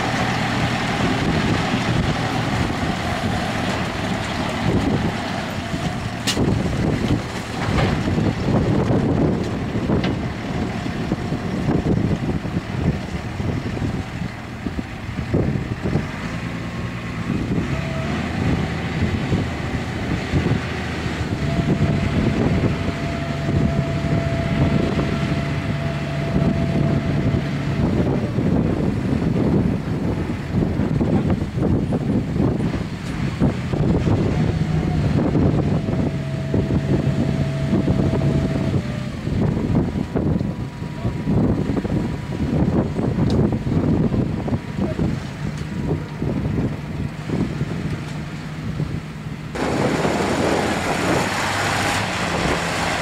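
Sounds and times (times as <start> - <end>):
tractor engines under load: 0.0 - 53.0.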